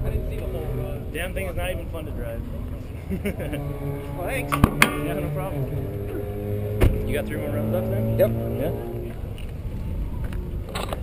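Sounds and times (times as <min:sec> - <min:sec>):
low steady rumbling: 0:00.0 - 0:11.0.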